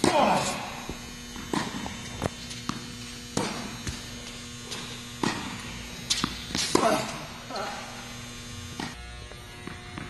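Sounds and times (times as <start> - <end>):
racket striking tennis ball: 0.0 - 4.1, 4.7 - 7.3
electrical hum: 0.0 - 10.0
tennis ball bouncing: 0.8 - 7.2, 9.6 - 10.0.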